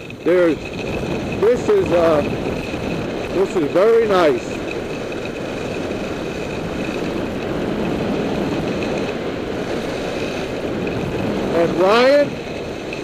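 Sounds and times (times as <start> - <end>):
wind on microphone: 0.0 - 13.0
ski edges scraping on snow: 0.1 - 13.0.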